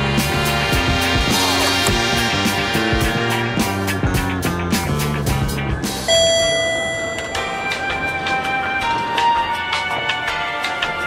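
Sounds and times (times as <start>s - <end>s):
soft music: 0.0s - 11.0s
elevator arrival chime: 6.1s - 8.7s.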